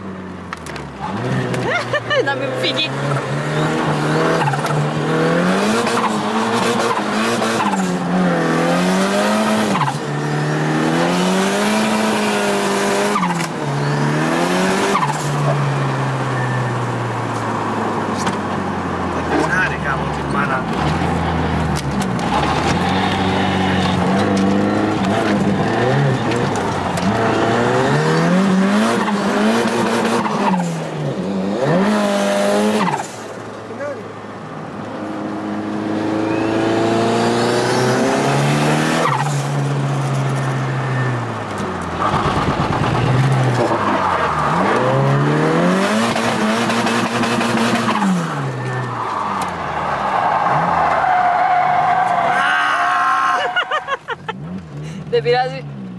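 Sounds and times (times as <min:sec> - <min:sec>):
car engine revving: 0:00.0 - 0:52.7
tyres squealing: 0:47.9 - 0:54.2.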